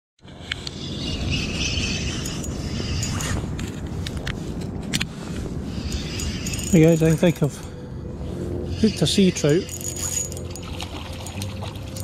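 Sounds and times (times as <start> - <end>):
wind rumbling on microphone: 0.2 - 12.0.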